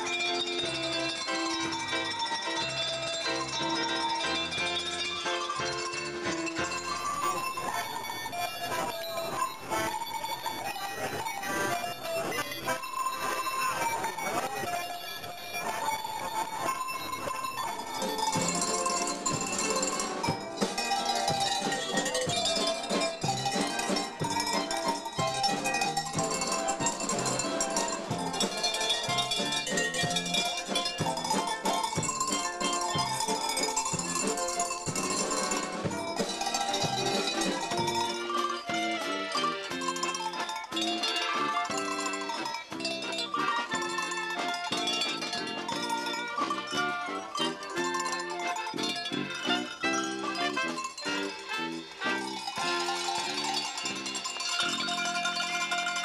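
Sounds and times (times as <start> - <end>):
tuned cowbells melody: 0.0 - 56.0.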